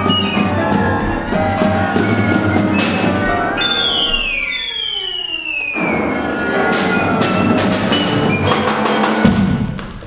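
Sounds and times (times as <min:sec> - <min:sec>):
chamber ensemble playing: 0:00.0 - 0:04.9
high sustained tones sliding downward: 0:00.2 - 0:06.5.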